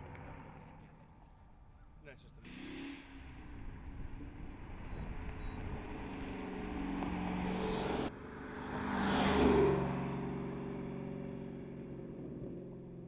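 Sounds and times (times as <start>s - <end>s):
car engine driving by: 2.4s - 13.0s.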